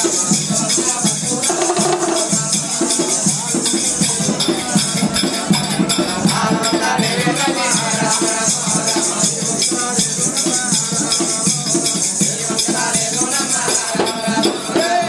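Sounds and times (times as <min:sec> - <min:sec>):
barrel drum beating: 0:00.0 - 0:08.8
ankle bells jingling: 0:00.0 - 0:15.0
person singing: 0:00.0 - 0:15.0.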